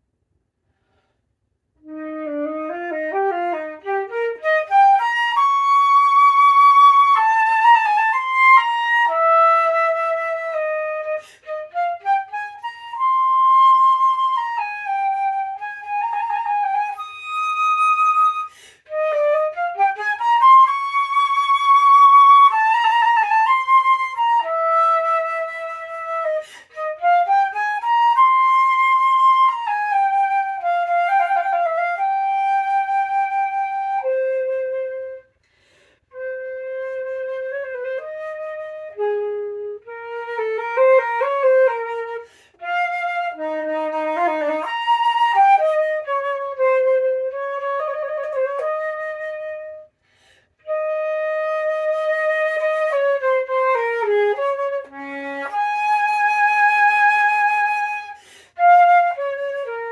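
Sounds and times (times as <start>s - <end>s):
solo flute playing: 0.8s - 59.9s.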